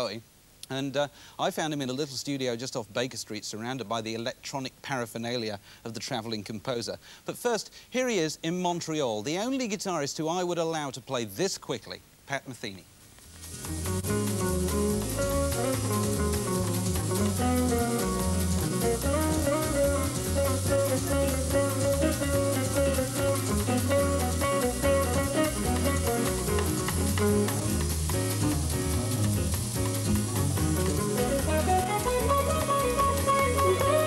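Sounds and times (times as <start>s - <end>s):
drum kit: 13.3s - 34.0s
low bass notes: 13.3s - 34.0s
electric guitar lead melody: 13.4s - 34.0s.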